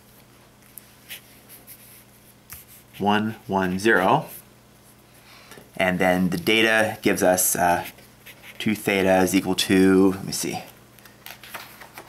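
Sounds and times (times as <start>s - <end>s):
steady low hum: 0.0s - 11.5s.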